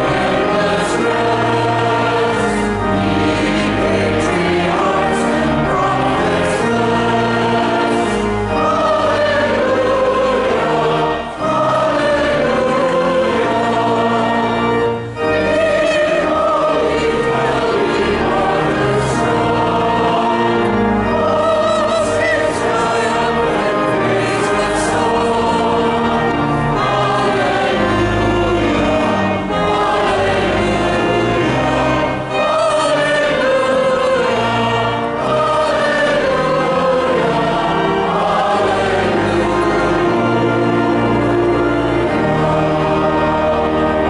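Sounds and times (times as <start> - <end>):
congregation singing a hymn: 0.0 - 44.0.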